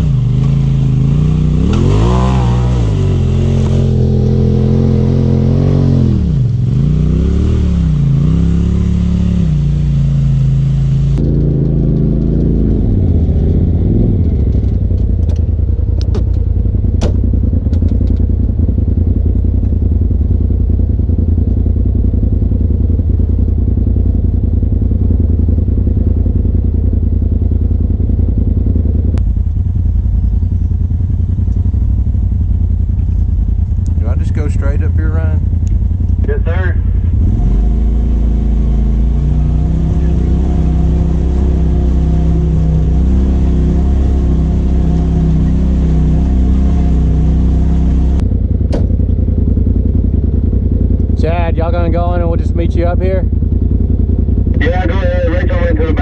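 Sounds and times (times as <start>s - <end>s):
utility vehicle engines revving: 0.0s - 56.0s.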